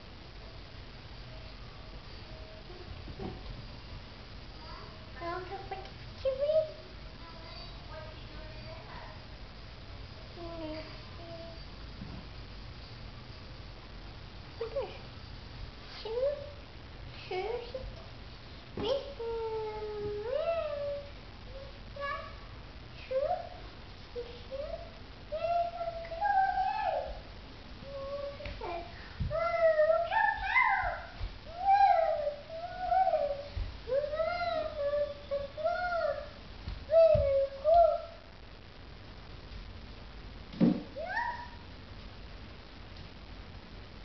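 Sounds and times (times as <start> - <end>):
toddler high-pitched vocalizing: 28.0 - 36.3
sudden thump: 40.5 - 41.0.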